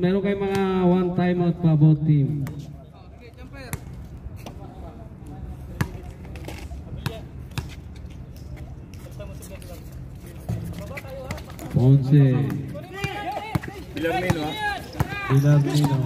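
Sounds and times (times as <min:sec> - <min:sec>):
background noise: 0:00.0 - 0:16.0
basketball bouncing on court: 0:12.4 - 0:16.0
man shouting: 0:12.8 - 0:16.0.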